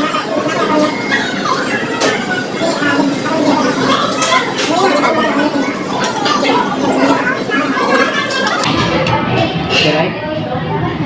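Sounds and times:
background chatter of diners: 0:00.0 - 0:11.0.

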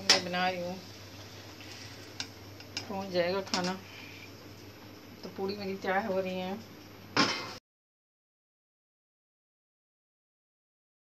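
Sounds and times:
faint steady low hum: 0:00.0 - 0:07.5.

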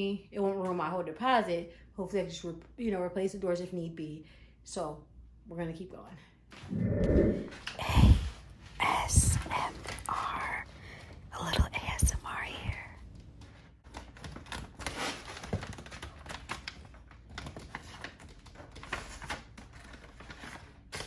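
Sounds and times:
person speaking: 0:06.7 - 0:10.7, 0:11.3 - 0:13.0.

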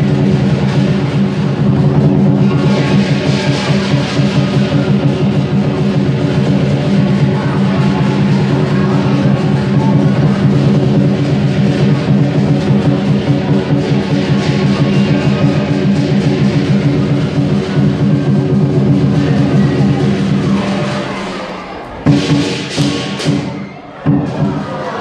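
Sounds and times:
drum beat: 0:00.0 - 0:25.0.

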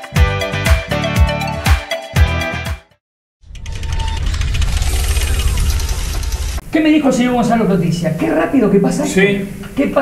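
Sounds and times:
rapid crackle: 0:03.5 - 0:06.6
loud steady rumbling: 0:03.6 - 0:07.0.

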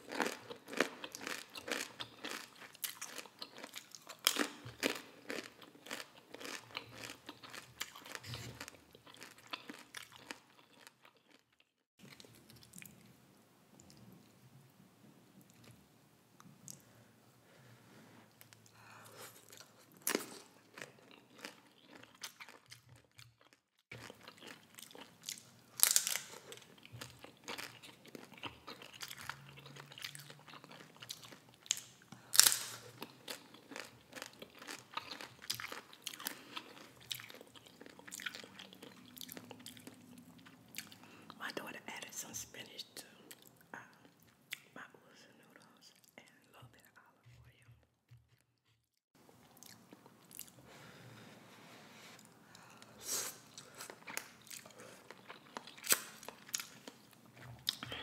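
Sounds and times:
chewing and mouth sounds: 0:00.0 - 0:13.1, 0:18.4 - 0:41.4, 0:49.4 - 0:50.6, 0:52.2 - 0:58.0
crunching chips: 0:24.0 - 0:40.0.

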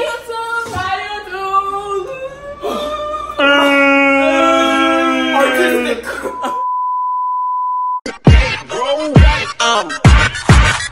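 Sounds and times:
steady electronic beep: 0:06.2 - 0:08.0
hip-hop music with heavy bass: 0:08.0 - 0:10.9.

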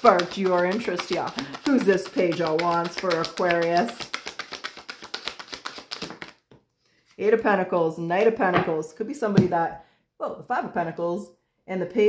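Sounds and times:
cards being shuffled by hand: 0:00.0 - 0:06.6.

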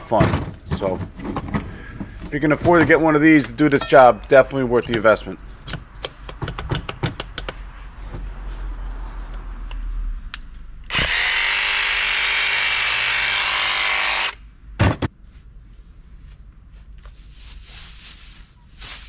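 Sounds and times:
thump: 0:14.8 - 0:15.1.

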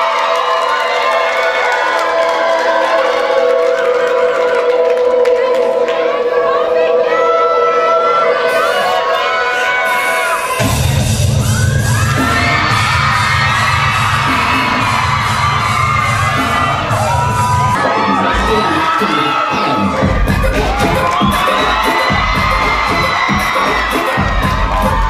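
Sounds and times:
crowd cheering and shouting: 0:00.0 - 0:25.0
loud dance music: 0:02.3 - 0:25.0
pulsing beat: 0:10.6 - 0:25.0.

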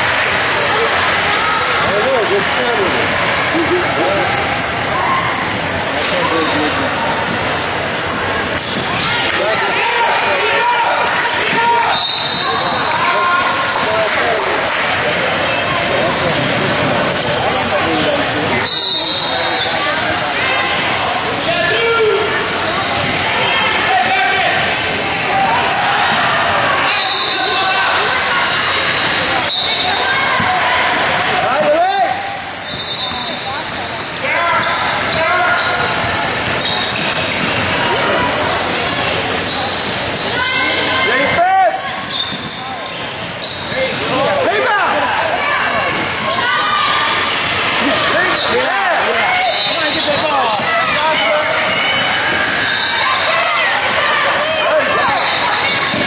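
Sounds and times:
sneakers squeaking: 0:04.5 - 0:09.6, 0:11.0 - 0:13.2, 0:15.4 - 0:23.2, 0:24.3 - 0:25.5, 0:28.5 - 0:44.5, 0:45.1 - 0:56.0.

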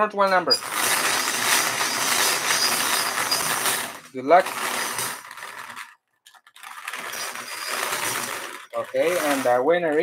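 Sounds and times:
bingo balls rattling in wire cage: 0:00.4 - 0:10.0.

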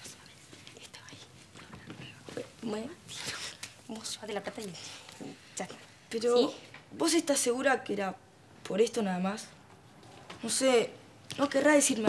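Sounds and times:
faint whispering voice: 0:00.0 - 0:03.6.

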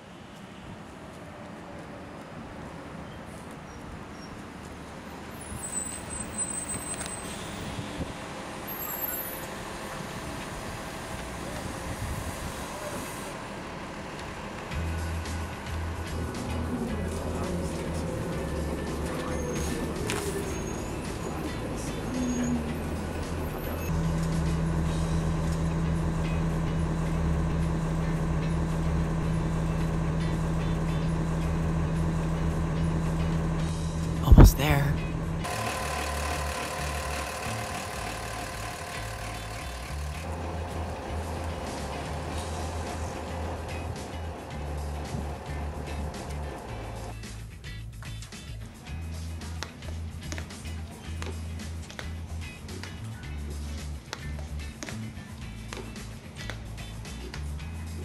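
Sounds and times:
bus engine running: 0:00.0 - 0:58.0.

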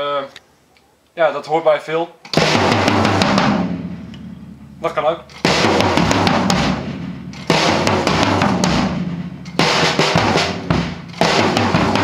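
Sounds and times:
snare and tom strokes: 0:02.3 - 0:12.0.

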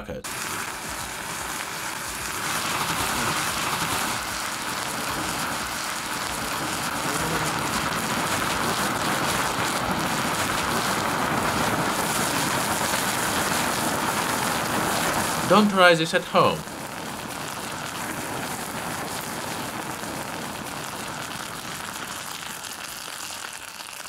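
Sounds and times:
fierce burning hiss: 0:00.2 - 0:24.0.

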